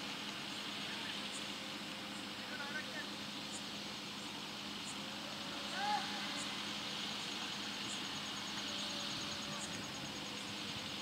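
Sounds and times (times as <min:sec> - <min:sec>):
steady background hiss: 0:00.0 - 0:11.0
players shouting: 0:05.5 - 0:06.5.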